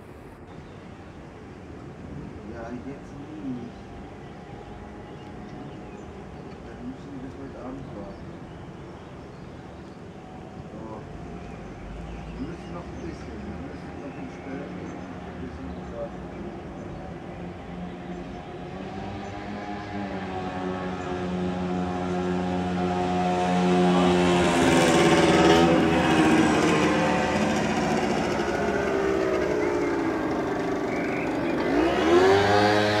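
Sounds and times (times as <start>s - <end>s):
engine passing by: 1.5s - 33.0s
second engine rising in pitch: 17.0s - 33.0s.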